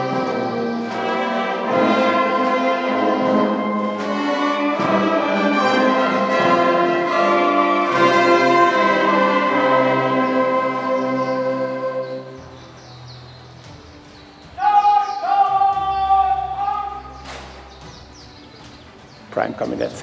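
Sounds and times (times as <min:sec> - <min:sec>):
held notes phrase: 0:00.0 - 0:13.1
band music: 0:00.0 - 0:20.0.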